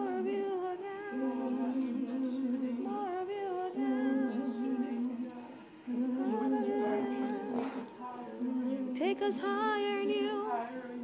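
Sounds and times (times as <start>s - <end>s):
woman humming held notes: 0.0s - 11.0s.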